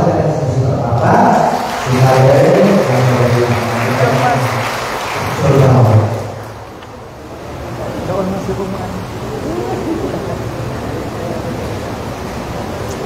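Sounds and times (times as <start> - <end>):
man talking: 0.0 - 6.4
hubbub of voices: 0.0 - 13.0.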